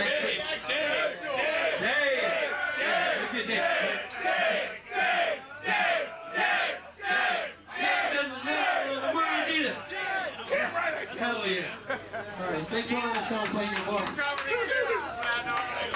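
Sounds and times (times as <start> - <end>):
crowd chanting: 0.0 - 11.2.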